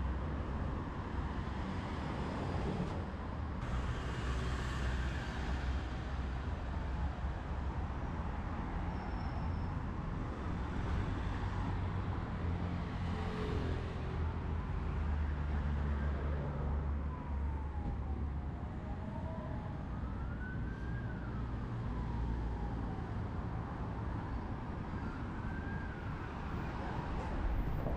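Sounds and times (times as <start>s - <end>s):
heavy road traffic: 0.0s - 27.9s
emergency vehicle siren wailing: 15.6s - 27.9s.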